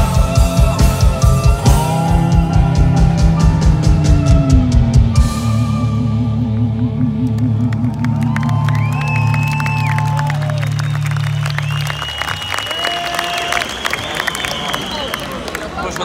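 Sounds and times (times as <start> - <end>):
rock band sustained chord: 0.0 - 12.5
crowd cheering and applauding: 6.4 - 16.0.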